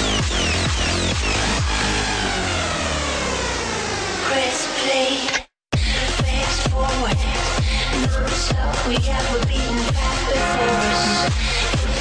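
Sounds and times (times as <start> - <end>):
electronic dance music: 0.0 - 5.2, 6.0 - 12.0.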